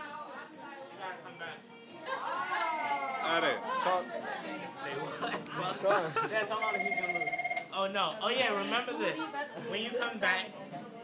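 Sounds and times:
electronic trilling ring: 2.8 - 3.6, 6.5 - 7.7.

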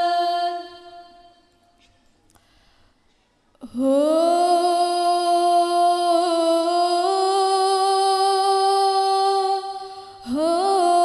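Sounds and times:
women singing in unison: 0.0 - 1.3, 3.6 - 11.0.

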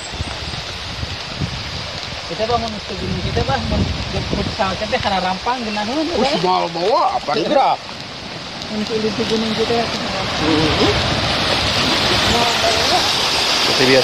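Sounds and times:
stream water rushing: 0.0 - 14.0
people talking: 2.3 - 7.8, 8.7 - 11.1, 11.8 - 14.0.

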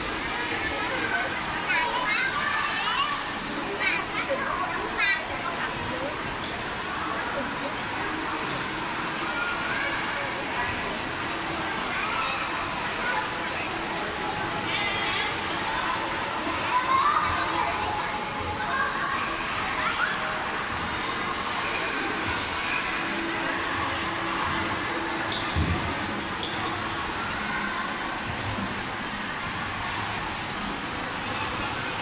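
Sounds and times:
children playing and chattering: 0.0 - 32.0.

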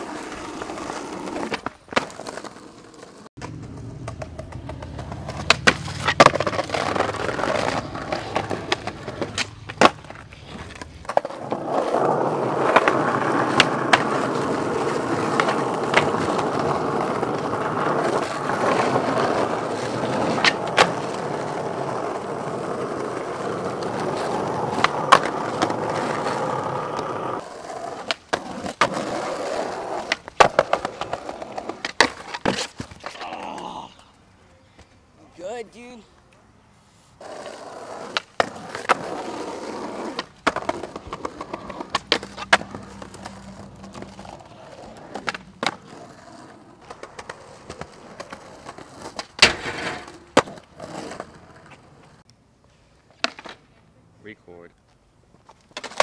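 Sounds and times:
skateboard popping and landing clacks: 0.0 - 33.3, 37.2 - 52.2, 53.0 - 53.8, 55.4 - 56.0
skateboard wheels rolling on asphalt: 0.0 - 56.0.

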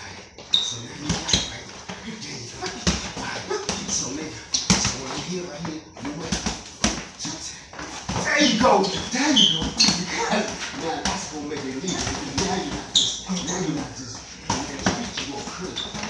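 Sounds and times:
voices: 0.0 - 16.0
boxing gloves punching: 2.6 - 5.3, 6.0 - 16.0.

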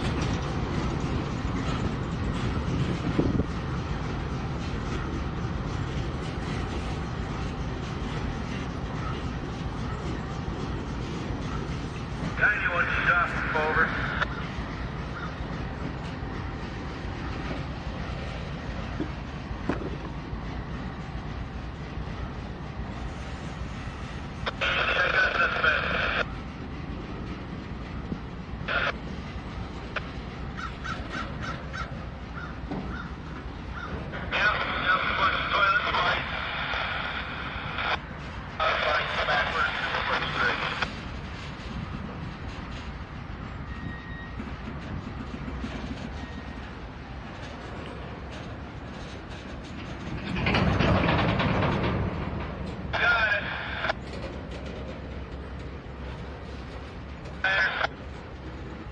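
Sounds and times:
train cars rolling rumble: 0.0 - 58.9.

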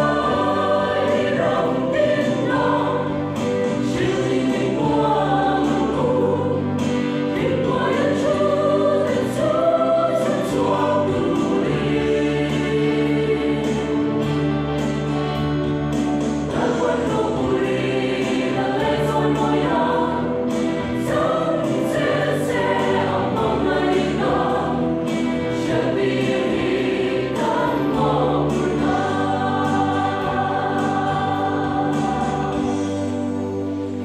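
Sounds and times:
mixed choir singing a hymn: 0.0 - 34.0.

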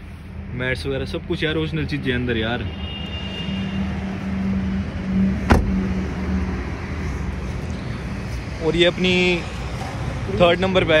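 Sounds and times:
vehicle engine humming: 0.0 - 11.0
car door shutting: 5.4 - 5.9.

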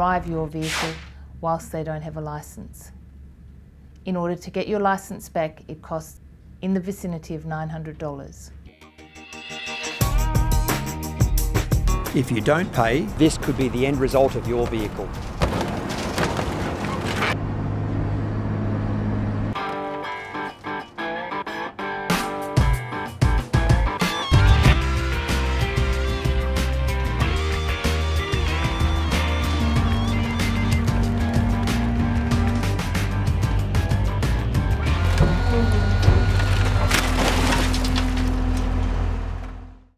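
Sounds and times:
metal crunching: 15.0 - 17.4, 34.8 - 39.6
excavator engine droning: 16.2 - 21.5, 24.5 - 39.9
metal and glass crunching: 36.2 - 38.6.

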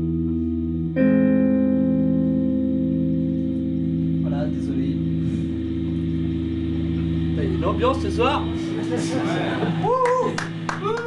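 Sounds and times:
amplifier electric drone: 0.0 - 11.0.

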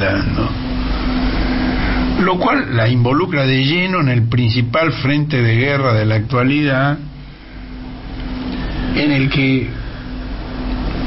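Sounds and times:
man talking: 0.0 - 0.6, 2.2 - 7.1, 8.9 - 9.8
low background hum and rumble: 0.0 - 11.0.

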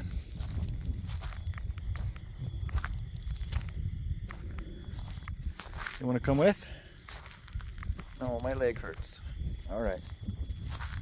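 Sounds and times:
footsteps on dirt and grass: 0.0 - 11.0
steady low rumble: 0.0 - 11.0.

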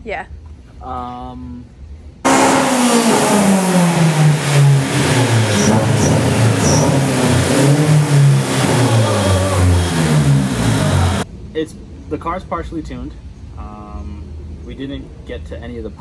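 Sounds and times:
car engine revving: 2.2 - 11.3.

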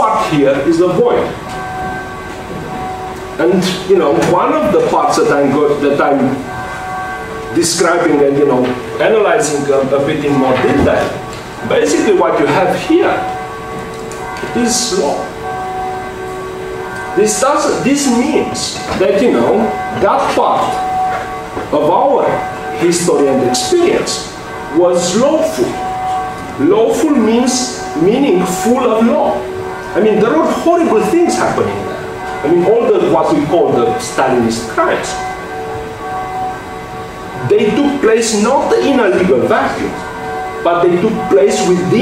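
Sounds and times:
man speaking: 0.0 - 1.4, 3.4 - 6.5, 7.5 - 13.3, 14.4 - 15.3, 17.2 - 20.8, 21.7 - 25.8, 26.6 - 29.4, 30.0 - 35.2, 37.4 - 40.0, 40.6 - 42.0
man talking: 0.0 - 1.4, 3.4 - 6.5, 7.5 - 13.4, 14.4 - 15.4, 17.2 - 20.9, 21.7 - 25.9, 26.6 - 35.3, 37.4 - 42.0
steady hum of held tones: 0.0 - 42.0.

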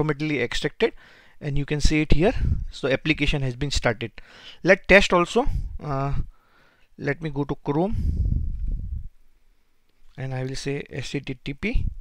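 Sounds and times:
low muffled rumble: 2.3 - 2.8, 7.9 - 9.2.

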